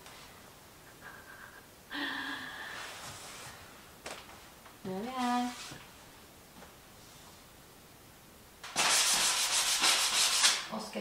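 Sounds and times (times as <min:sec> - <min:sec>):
hand sanding wood: 0:08.7 - 0:10.7.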